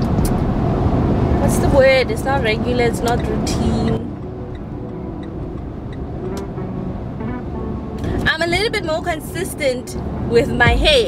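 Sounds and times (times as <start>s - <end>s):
car road and engine noise: 0.0s - 11.0s.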